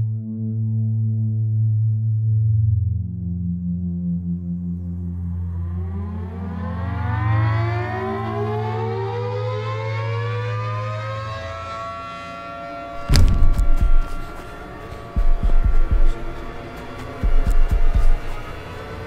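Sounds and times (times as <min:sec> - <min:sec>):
low drone: 0:00.0 - 0:19.0
siren winding up: 0:05.6 - 0:17.2
loud sharp thuds: 0:13.0 - 0:14.4.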